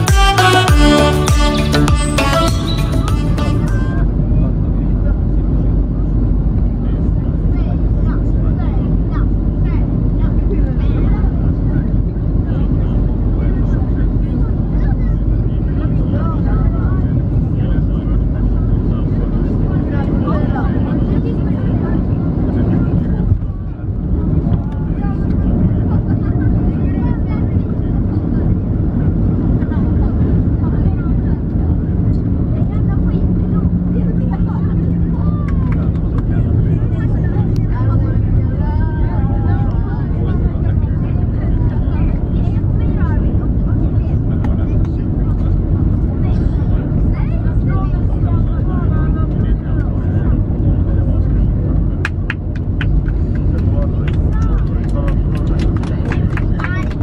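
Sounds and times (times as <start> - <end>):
airflow rush in cabin: 2.3 - 57.0
jet engines: 4.0 - 57.0.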